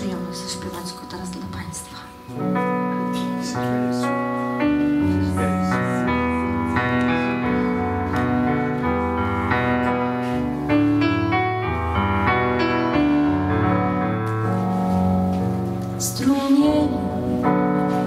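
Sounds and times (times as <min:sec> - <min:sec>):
piano chords with melody: 0:00.0 - 0:18.0.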